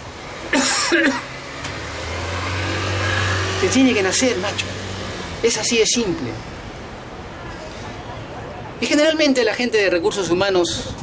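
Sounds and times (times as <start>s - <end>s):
vehicle engine humming: 0.0s - 8.8s.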